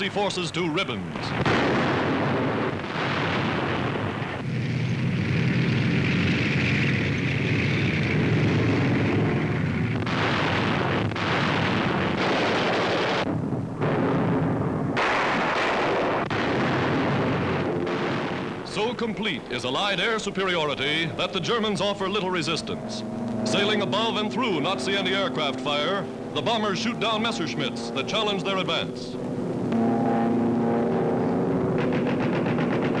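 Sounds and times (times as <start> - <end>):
explosions: 1.1 - 22.6, 31.5 - 33.0
gunfire: 1.3 - 4.5, 8.1 - 22.8, 31.5 - 33.0
steady low drone: 19.4 - 33.0.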